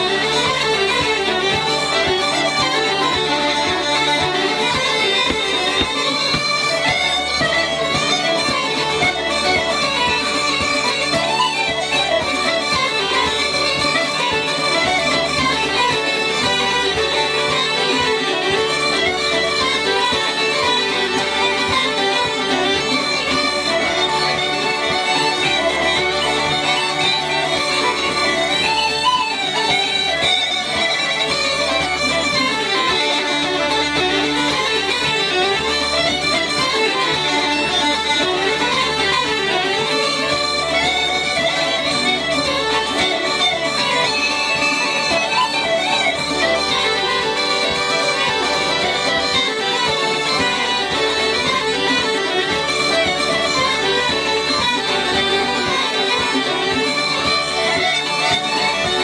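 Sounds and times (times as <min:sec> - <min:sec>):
bagpipes playing a folk tune: 0:00.0 - 0:59.0.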